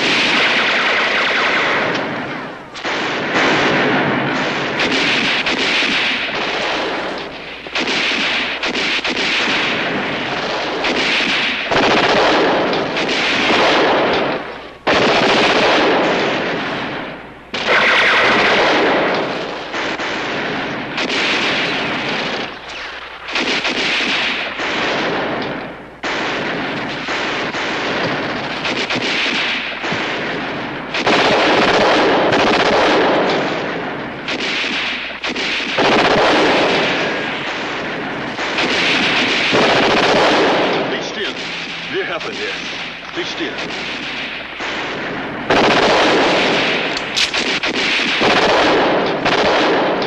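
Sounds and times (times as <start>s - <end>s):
machine-gun fire: 0.0s - 50.0s
rifle fire: 0.0s - 50.0s.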